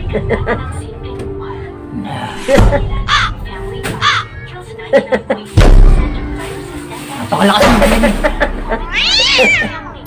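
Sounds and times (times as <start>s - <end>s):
cat meowing: 8.8s - 10.0s.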